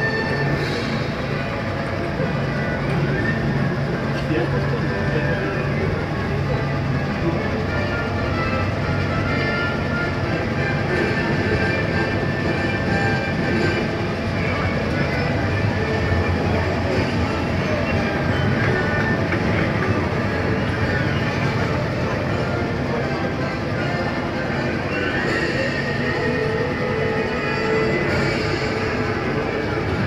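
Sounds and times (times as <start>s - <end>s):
monorail train running: 0.0s - 30.0s.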